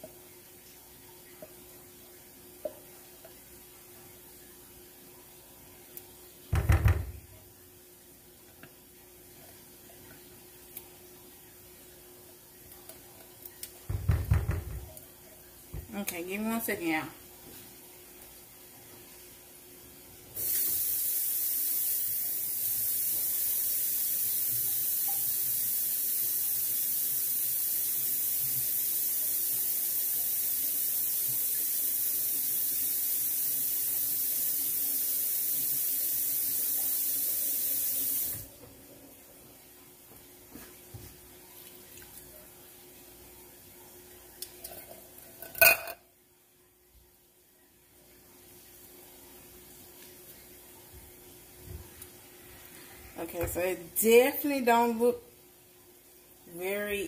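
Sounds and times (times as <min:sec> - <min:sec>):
kitchen faucet running: 0:13.9 - 0:14.9, 0:20.4 - 0:38.9.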